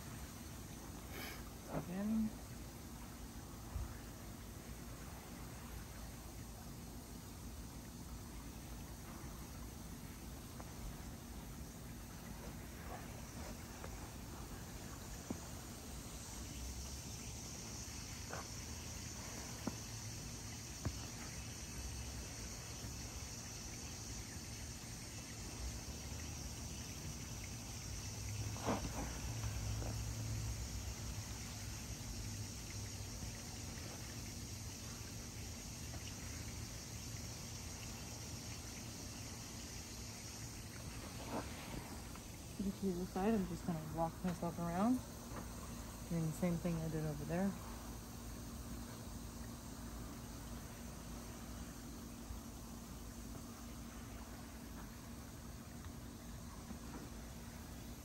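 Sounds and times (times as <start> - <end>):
crickets chirping: 0.0 - 58.0.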